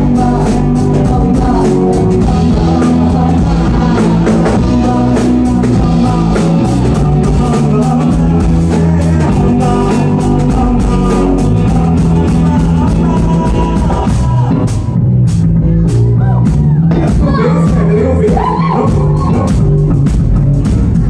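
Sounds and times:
person singing: 0:00.0 - 0:15.0, 0:15.9 - 0:20.1
drum kit beat: 0:00.0 - 0:21.0
electric guitar: 0:00.0 - 0:21.0.

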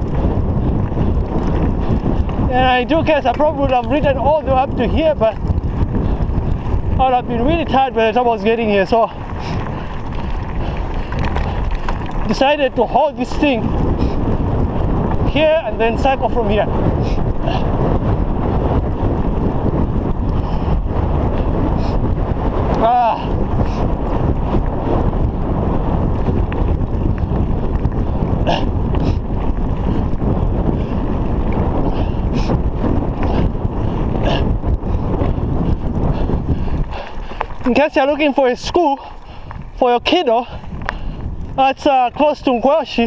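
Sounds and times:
bike clicks and rattles: 0:00.0 - 0:43.0
bike tyres rumbling on dirt road: 0:00.0 - 0:43.0
wind buffeting microphone: 0:00.0 - 0:43.0.

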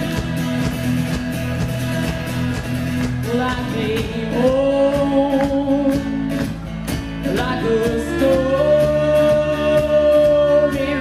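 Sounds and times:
person singing lead vocal: 0:00.0 - 0:01.1, 0:03.2 - 0:06.4, 0:07.2 - 0:11.0
folk-rock band playing: 0:00.0 - 0:11.0.

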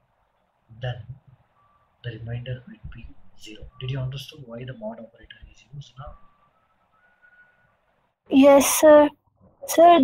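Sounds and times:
man speaking: 0:00.7 - 0:01.4, 0:02.0 - 0:06.3.

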